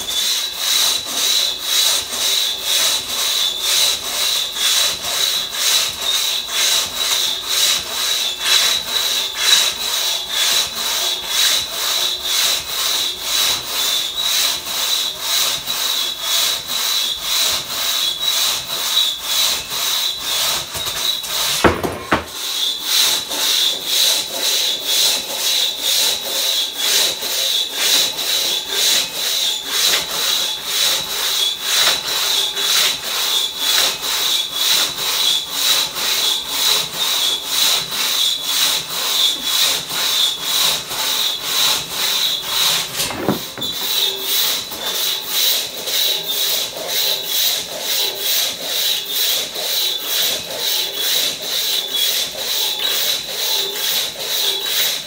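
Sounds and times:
crosscut saw cutting a log: 0.0s - 55.0s.

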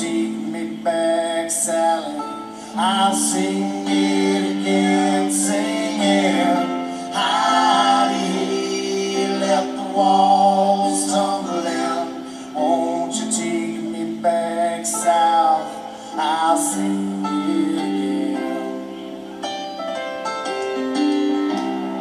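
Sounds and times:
person singing lead vocal: 0.0s - 19.3s
low harmony notes: 0.0s - 22.0s
country-rock band playing: 19.4s - 22.0s.

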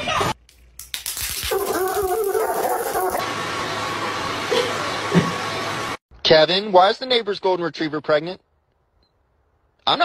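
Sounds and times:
dog crying high-pitched: 1.5s - 3.2s.

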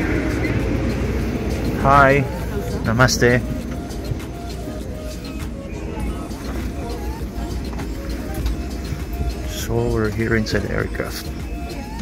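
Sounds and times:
airliner cabin rumble: 0.0s - 12.0s
faint passenger voices: 0.0s - 12.0s.

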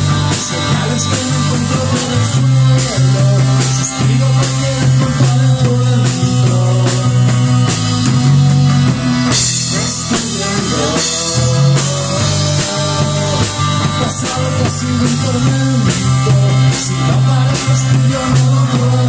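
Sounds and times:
bass guitar: 0.0s - 19.0s
drum kit with ticking cymbal: 0.0s - 19.0s
electric guitars: 0.0s - 19.0s
person singing: 0.0s - 19.0s.

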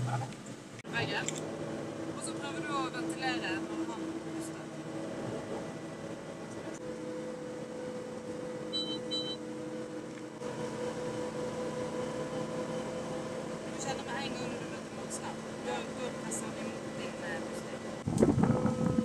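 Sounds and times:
engine drone inside vehicle: 0.0s - 19.0s.

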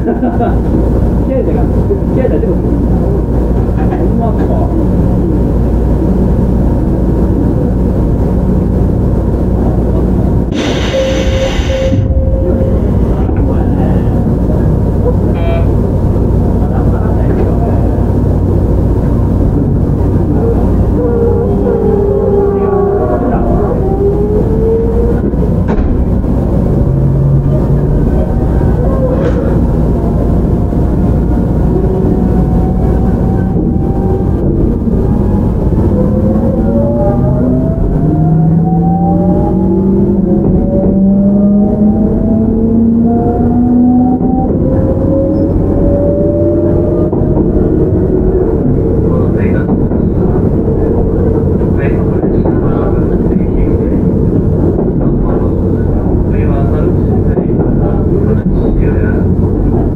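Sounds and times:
wheels rumbling on rail: 0.0s - 59.9s
train motors whining: 2.8s - 58.0s.

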